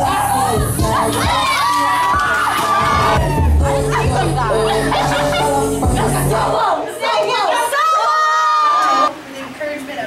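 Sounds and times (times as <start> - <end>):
hip hop music: 0.0 - 7.5
young people cheering and shouting: 0.0 - 9.1.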